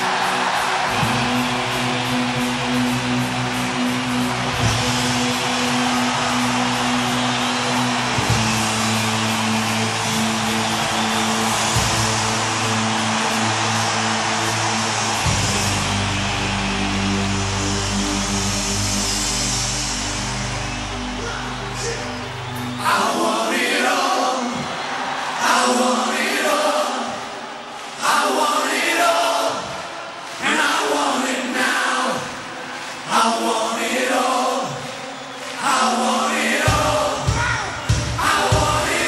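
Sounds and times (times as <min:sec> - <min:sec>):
hard rock band playing: 0:00.0 - 0:18.8.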